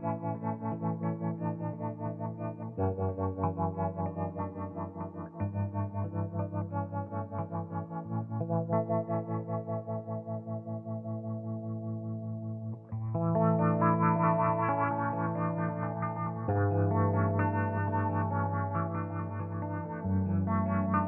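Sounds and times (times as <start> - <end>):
electric guitar with tremolo: 0.0 - 21.0.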